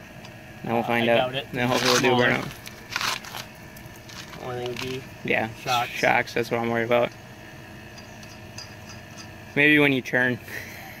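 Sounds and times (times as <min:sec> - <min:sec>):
lug nuts clinking: 0:07.9 - 0:09.4.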